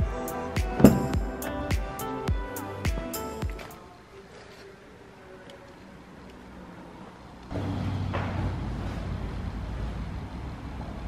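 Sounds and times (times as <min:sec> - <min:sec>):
background music with steady beat: 0:00.0 - 0:04.0.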